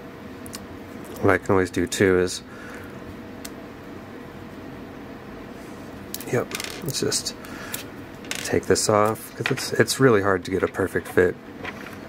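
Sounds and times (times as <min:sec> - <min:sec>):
low room hum and hiss: 0:00.0 - 0:12.0.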